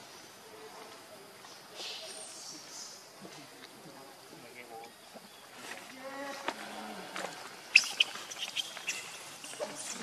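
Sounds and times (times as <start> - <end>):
high-pitched chirps and squeaks: 7.7 - 9.2.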